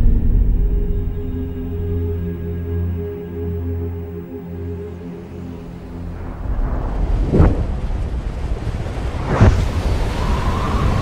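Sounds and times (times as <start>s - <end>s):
deep rushing rumble: 0.0s - 4.2s, 5.4s - 11.0s.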